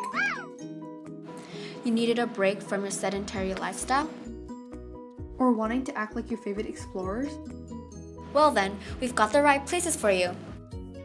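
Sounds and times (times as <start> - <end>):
cat meowing: 0.0 - 0.6
background music: 0.0 - 11.0.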